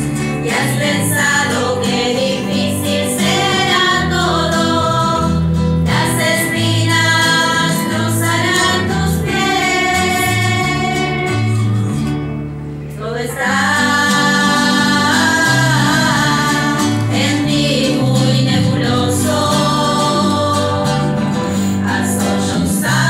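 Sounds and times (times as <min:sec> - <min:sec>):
acoustic guitar: 0:00.0 - 0:23.0
women singing a sacred song: 0:00.4 - 0:11.7, 0:13.0 - 0:23.0.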